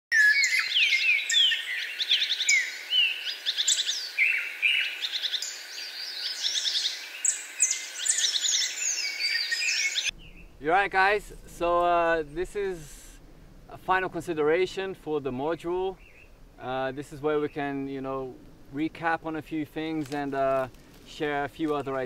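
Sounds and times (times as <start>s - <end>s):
songbirds singing: 0.1s - 10.6s, 15.2s - 18.6s.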